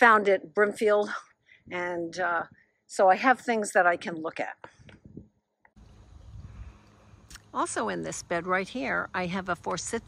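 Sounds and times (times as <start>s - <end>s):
wind rumbling on microphone: 4.7s - 7.4s.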